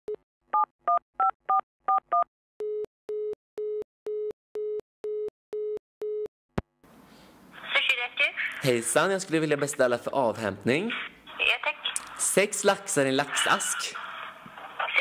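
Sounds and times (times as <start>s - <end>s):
person speaking: 11.8s - 14.0s.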